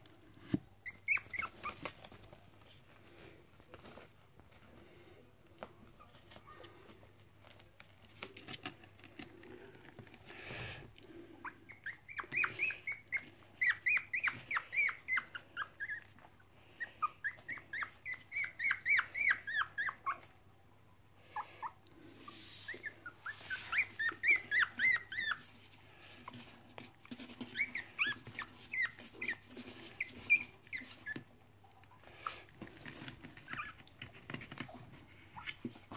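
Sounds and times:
puppy squeaking and whimpering: 0:00.8 - 0:02.1, 0:11.4 - 0:20.3, 0:21.3 - 0:25.7, 0:27.1 - 0:31.3, 0:32.1 - 0:35.9.

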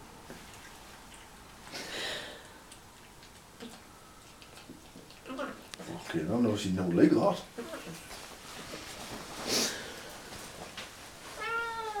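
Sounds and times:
cat meowing: 0:11.4 - 0:12.0.

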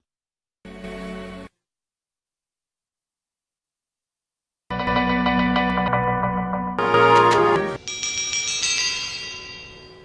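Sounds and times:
bell-like chime: 0:07.8 - 0:10.0.

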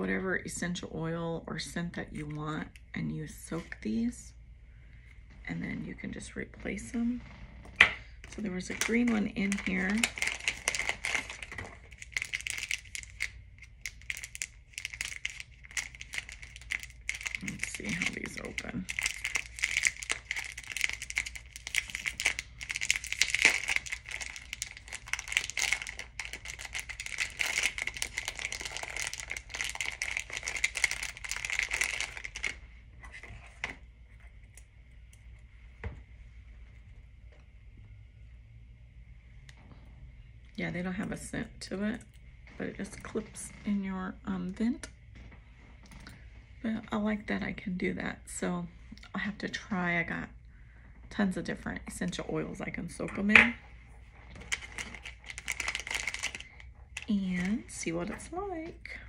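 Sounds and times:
plastic packaging crinkling: 0:08.2 - 0:33.8, 0:53.9 - 0:59.0.

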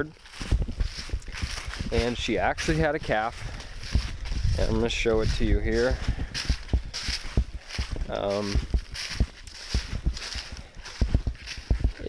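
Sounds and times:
footsteps through dry leaves: 0:00.0 - 0:12.0
leaves rustling: 0:00.0 - 0:12.0.

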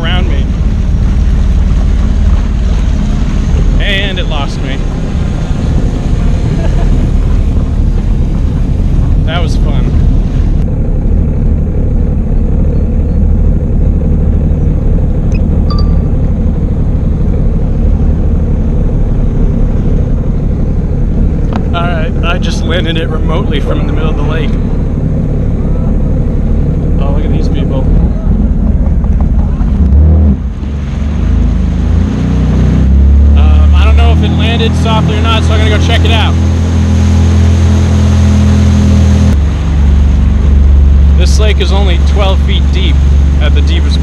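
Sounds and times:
wind noise on microphone: 0:00.0 - 0:21.8, 0:27.9 - 0:33.5
jet ski engine running: 0:00.0 - 0:44.0.

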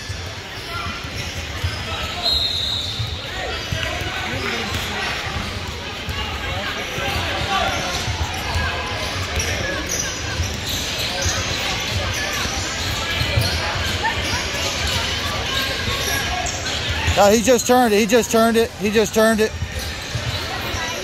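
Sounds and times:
voices echoing: 0:00.5 - 0:21.0.

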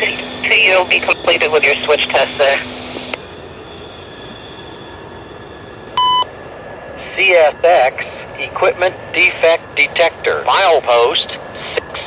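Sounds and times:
radio hiss: 0:00.0 - 0:03.2, 0:07.0 - 0:12.0
distant freight train: 0:00.0 - 0:12.0
loud electronic beep: 0:06.0 - 0:06.3.

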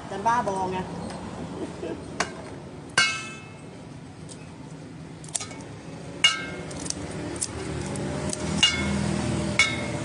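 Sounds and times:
sharp metallic clink: 0:08.6 - 0:09.0.

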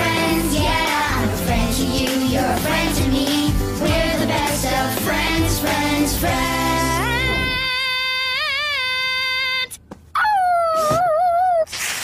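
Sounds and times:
cartoon dog howl: 0:07.0 - 0:11.7.

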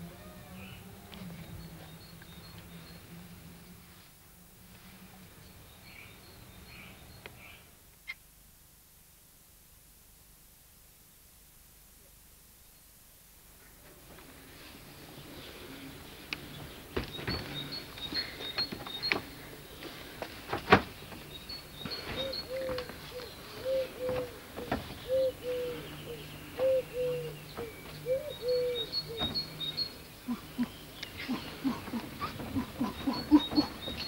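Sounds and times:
small birds chirping: 0:15.0 - 0:20.2, 0:21.0 - 0:34.0.

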